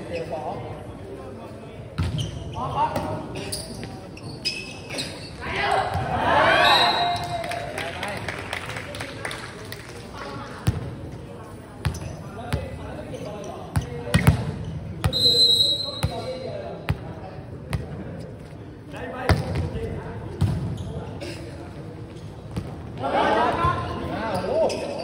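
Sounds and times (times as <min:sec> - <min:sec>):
players' voices: 0:00.0 - 0:25.0
referee's whistle blast: 0:15.1 - 0:16.1.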